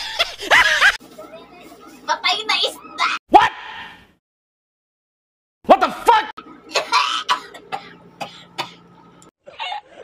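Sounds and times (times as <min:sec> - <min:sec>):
woman coughing and gagging: 0:06.7 - 0:08.9.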